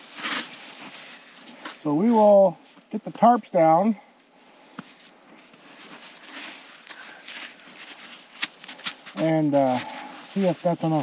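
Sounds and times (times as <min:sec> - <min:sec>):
footsteps crunching through snow: 0:00.0 - 0:02.0, 0:04.8 - 0:11.0.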